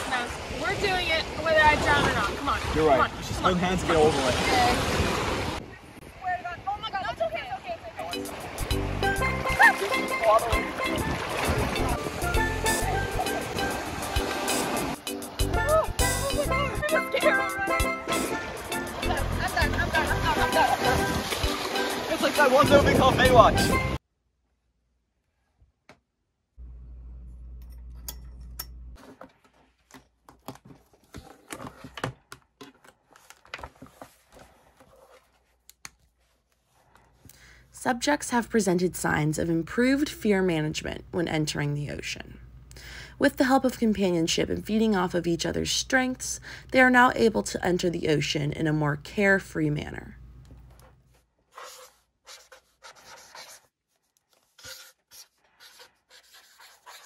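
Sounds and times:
marker strokes on paper: 51.5s - 57.0s.

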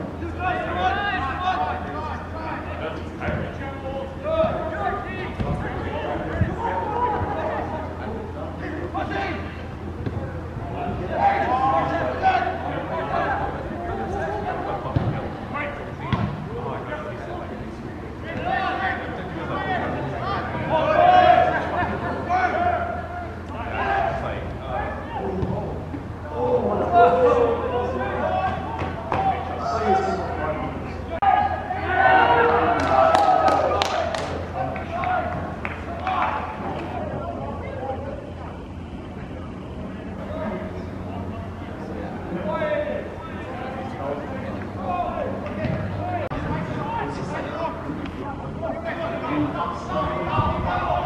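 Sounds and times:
players calling out: 0.0s - 51.0s.

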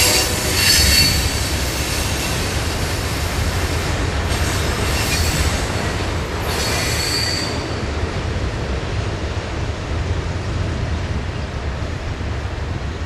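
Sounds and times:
train wheel squeal: 0.0s - 7.9s
freight train cars rolling: 0.0s - 12.4s.

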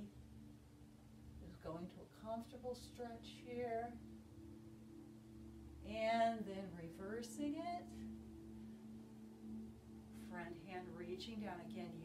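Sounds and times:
drone-like background music: 0.0s - 12.0s.

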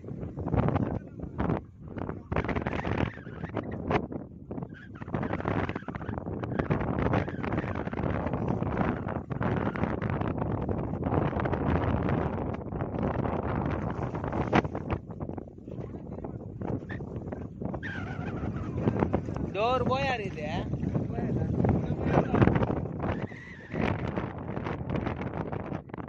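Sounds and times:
wind buffeting microphone: 0.0s - 26.0s.

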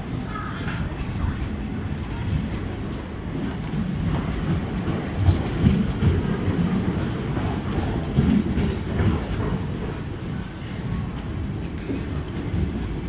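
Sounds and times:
train coaches rumbling past: 0.0s - 13.0s.

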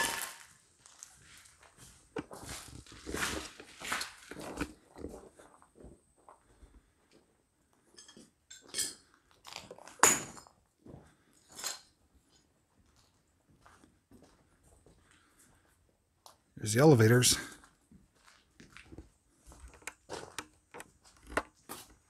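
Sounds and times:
footsteps crunching on debris: 0.0s - 6.4s, 17.6s - 22.0s.

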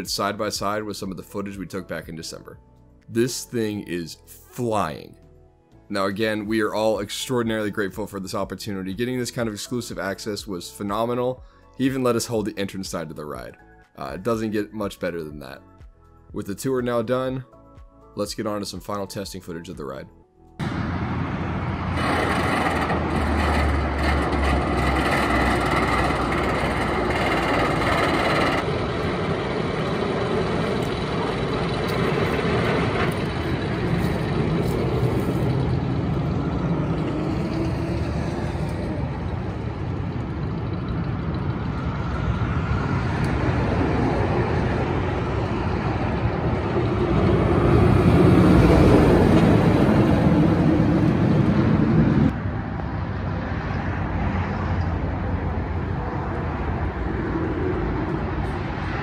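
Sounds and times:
roller coaster rumbling on track: 20.6s - 52.8s.

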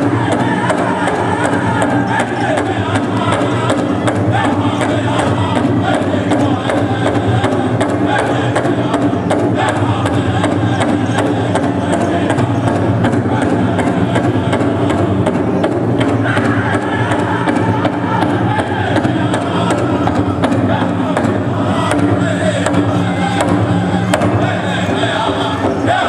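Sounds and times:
crowd noise: 0.0s - 26.0s
group singing in unison: 0.0s - 26.0s
steady big drum beat: 0.0s - 26.0s.

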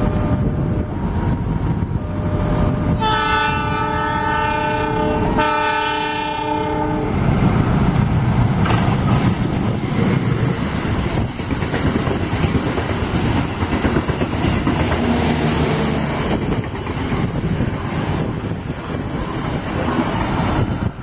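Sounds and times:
train carriages rumbling and clattering: 0.0s - 21.0s
locomotive air horn blasts: 2.9s - 7.2s.

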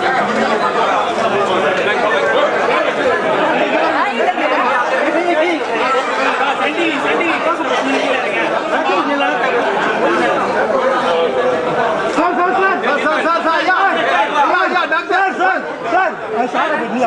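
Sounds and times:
men talking over one another: 0.0s - 17.0s.

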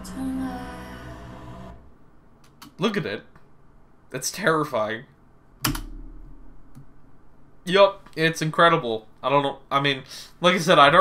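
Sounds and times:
low thud: 5.7s - 6.8s.

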